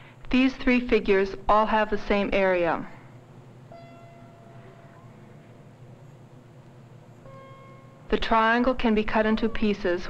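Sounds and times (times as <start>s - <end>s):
film soundtrack hum and hiss: 0.0s - 10.0s
faint held musical note: 3.7s - 8.3s.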